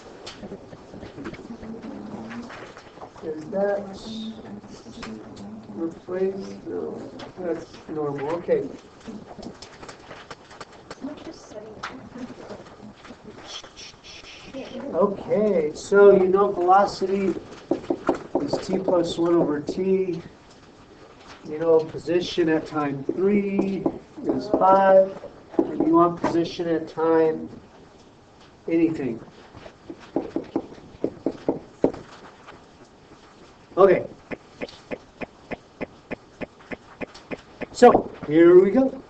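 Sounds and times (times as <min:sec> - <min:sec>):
stylus tapping on writing surface: 0:17.7 - 0:19.5, 0:29.9 - 0:32.0, 0:34.3 - 0:37.8.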